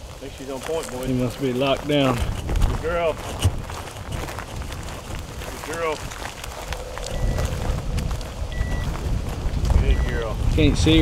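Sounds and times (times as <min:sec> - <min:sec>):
footsteps through dry grass: 0:00.0 - 0:11.0
wind rumble on microphone: 0:00.0 - 0:11.0
beeper collar beep: 0:07.1 - 0:07.6, 0:08.5 - 0:08.9, 0:09.8 - 0:10.4.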